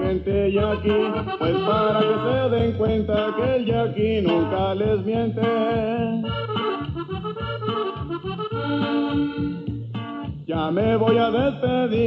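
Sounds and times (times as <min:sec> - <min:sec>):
accordion melodic fill: 0:00.0 - 0:12.0
repeating bass notes: 0:00.0 - 0:12.0.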